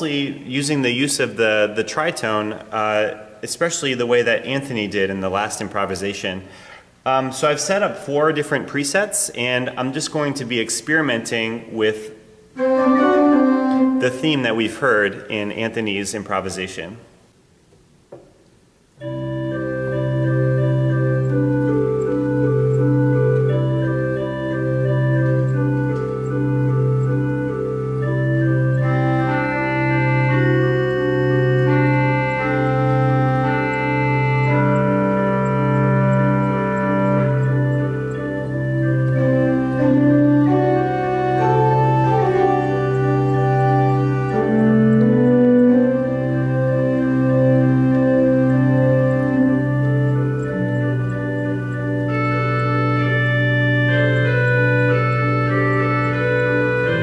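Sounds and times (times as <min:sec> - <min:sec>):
pipe organ playing: 0:00.0 - 0:16.8, 0:19.0 - 0:57.0.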